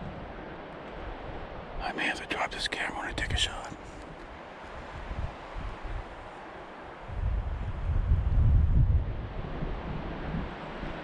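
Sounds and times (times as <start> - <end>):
low wind rumble on microphone: 0.0 - 11.0
man whispering: 1.8 - 4.0.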